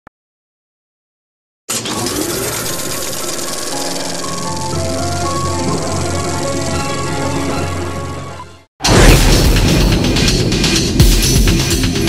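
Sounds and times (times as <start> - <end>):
film projector clatter: 1.7 - 7.3.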